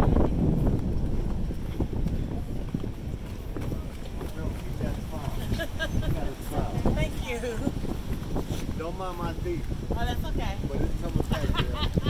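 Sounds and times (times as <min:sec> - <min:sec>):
footsteps on wooden deck: 0:00.0 - 0:11.5
wind rumbling on microphone: 0:00.0 - 0:12.0.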